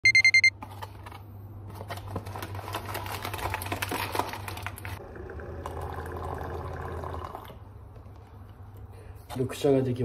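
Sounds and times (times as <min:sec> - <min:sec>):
alarm clock beeping: 0:00.0 - 0:00.5.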